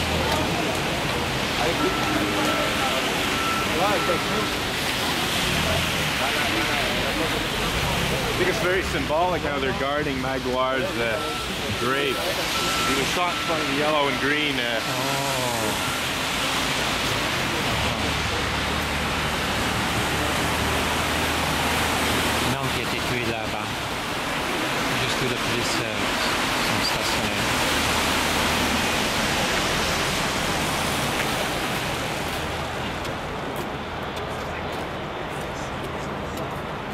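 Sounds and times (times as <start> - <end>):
car tyres on wet road: 0.0 - 36.9.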